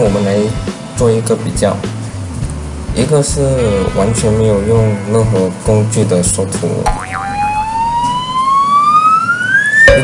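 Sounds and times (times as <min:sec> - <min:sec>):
whistle tone gliding upward: 0:07.0 - 0:10.0.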